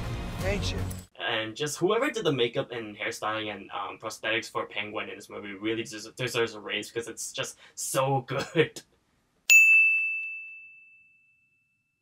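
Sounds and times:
bright bell ding: 9.5 - 12.0.

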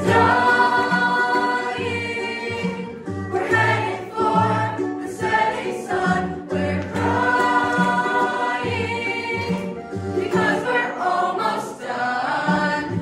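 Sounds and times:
choir singing in harmony: 0.0 - 13.0.

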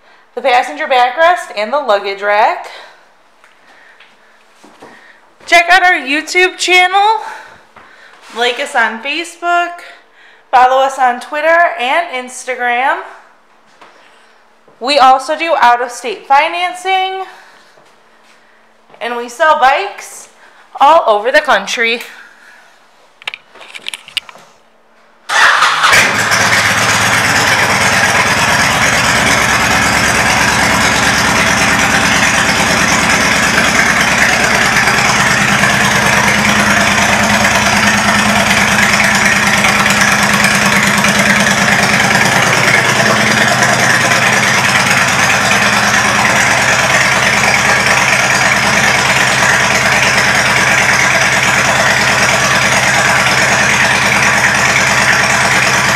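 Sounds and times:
motorcycle engine starting and idling: 25.3 - 55.9.

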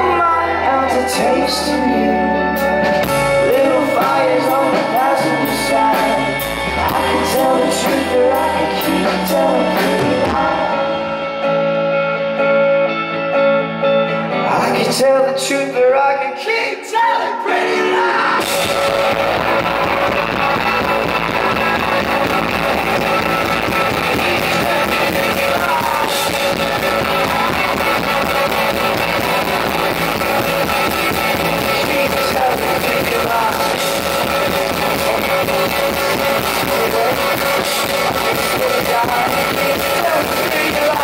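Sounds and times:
rock band playing live: 0.0 - 15.9, 17.4 - 41.0
electric guitars: 0.0 - 16.4, 17.3 - 41.0.

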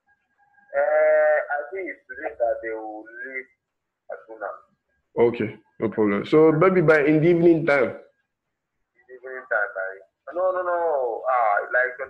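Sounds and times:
man talking: 0.7 - 8.1, 9.1 - 12.0.

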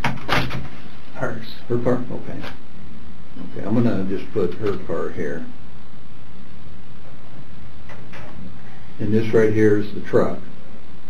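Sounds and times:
room hiss and hum: 0.0 - 11.0.

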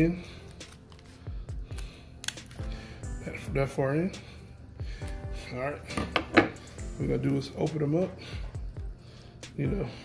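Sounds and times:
background music with beat: 0.0 - 10.0
kitchen shears snipping shell: 1.7 - 2.7.

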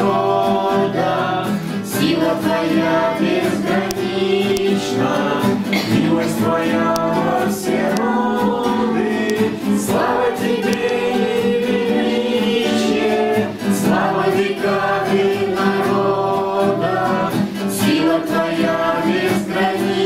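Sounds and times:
man singing: 0.0 - 19.9
classical guitar: 0.0 - 20.0.

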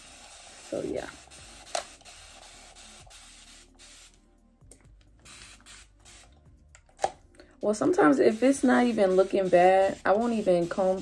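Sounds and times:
spray bottle hissing: 0.0 - 4.2, 5.2 - 6.4, 8.2 - 11.0.

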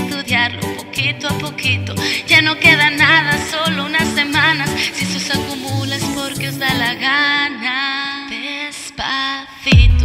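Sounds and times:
thin pop backing music: 0.0 - 7.4
woman singing: 0.0 - 10.0.

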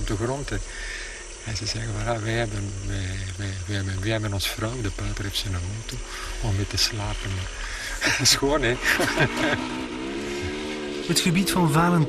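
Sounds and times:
dirt bike engine running: 0.0 - 12.0.

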